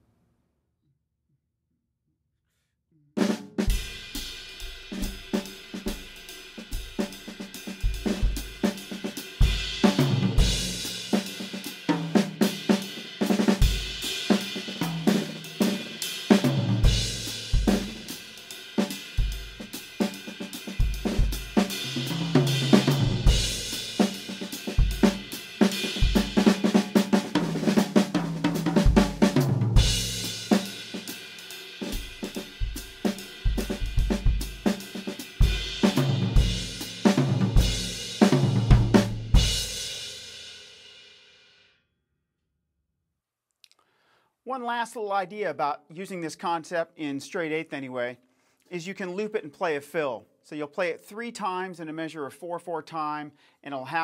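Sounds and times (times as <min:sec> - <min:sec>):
tom and snare fills: 0:03.2 - 0:39.6
drum kit playing swing groove: 0:03.2 - 0:40.2.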